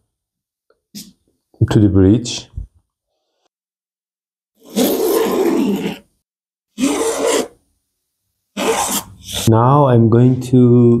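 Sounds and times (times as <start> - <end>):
pencil scraping along steel rule: 6.8 - 7.6, 8.6 - 9.5.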